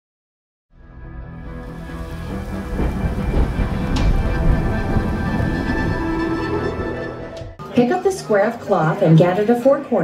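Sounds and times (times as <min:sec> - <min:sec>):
steady musical drone: 0:01.2 - 0:10.0
rain: 0:01.4 - 0:06.3
sharp thunder crack: 0:01.6 - 0:06.5
thunder: 0:01.6 - 0:06.9.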